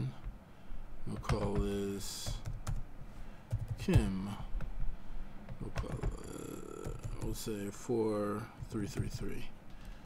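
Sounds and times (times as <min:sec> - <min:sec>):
keyboard keys clicking: 0:01.1 - 0:02.8, 0:06.8 - 0:07.5.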